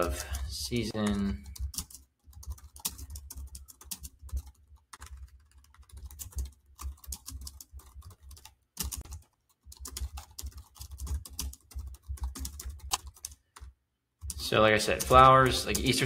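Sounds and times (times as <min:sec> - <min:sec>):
computer keyboard typing: 0:01.0 - 0:16.0.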